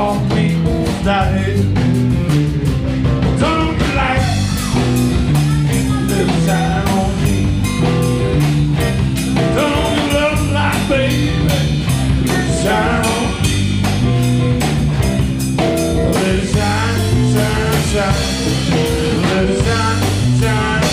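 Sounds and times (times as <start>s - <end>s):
person singing: 0.0s - 2.0s, 3.2s - 8.2s, 9.2s - 13.9s, 15.8s - 20.9s
blues band playing live: 0.0s - 20.9s
electric guitar bending notes: 0.0s - 20.9s.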